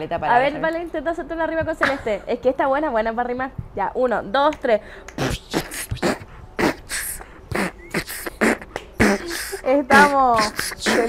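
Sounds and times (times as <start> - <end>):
beatboxing mouth sounds: 5.1 - 11.0.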